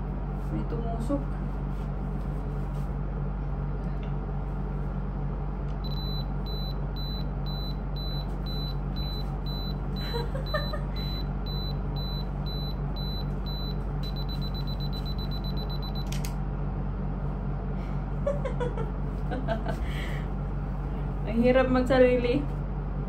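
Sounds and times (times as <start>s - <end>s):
steady low hum: 0.0s - 23.0s
camera self-timer beeping: 14.0s - 16.2s.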